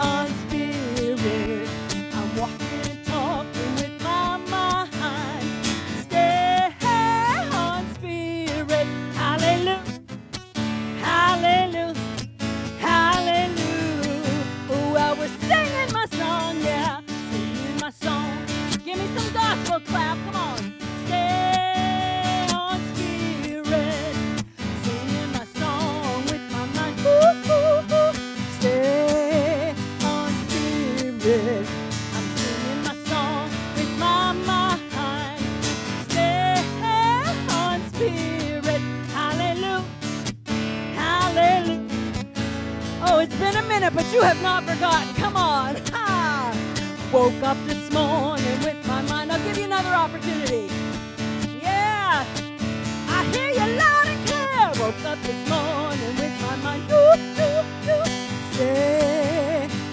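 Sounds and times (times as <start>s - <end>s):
woman singing gospel song: 0.0s - 10.0s, 11.0s - 12.1s, 12.8s - 39.9s, 40.9s - 42.0s, 43.0s - 50.8s, 51.5s - 52.4s, 53.1s - 59.9s
strummed acoustic guitar: 0.0s - 59.9s.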